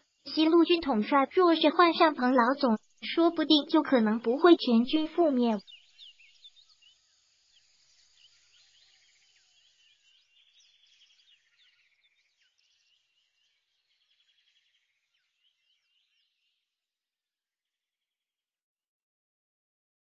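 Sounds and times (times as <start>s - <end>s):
birds chirping and trilling: 0.0s - 16.6s.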